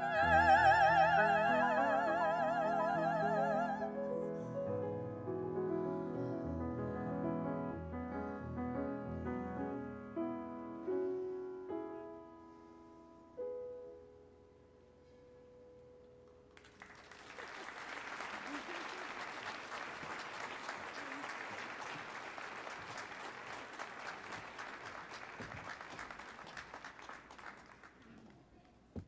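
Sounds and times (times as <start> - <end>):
audience applause: 16.6 - 28.2.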